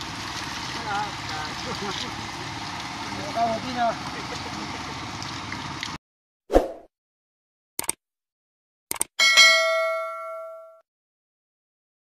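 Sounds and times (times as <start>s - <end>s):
notification bell ding: 9.2s - 10.8s.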